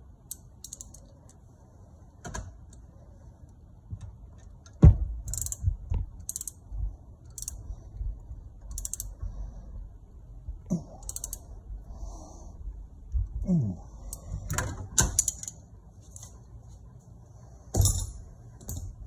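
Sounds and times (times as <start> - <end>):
ratchet wrench clicking: 0.3 - 1.1, 5.2 - 6.6, 7.2 - 7.6, 8.6 - 9.2, 11.0 - 11.4, 15.2 - 15.6.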